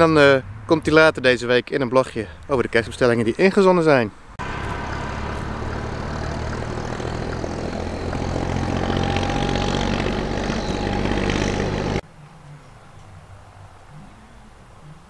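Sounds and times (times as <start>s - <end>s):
road noise: 0.0s - 12.0s
vehicle engine running: 4.4s - 12.0s.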